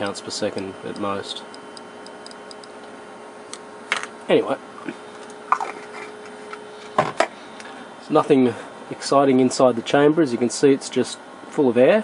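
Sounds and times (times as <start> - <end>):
clicker ticking: 0.9 - 2.8.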